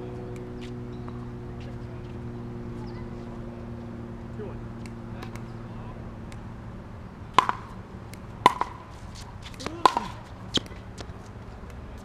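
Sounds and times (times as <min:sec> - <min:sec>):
paddles hitting plastic ball: 0:07.3 - 0:11.1.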